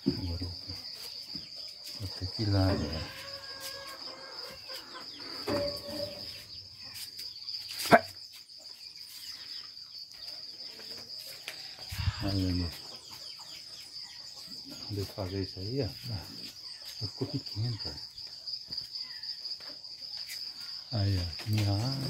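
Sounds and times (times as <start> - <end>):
insects chirring: 0.0 - 22.0.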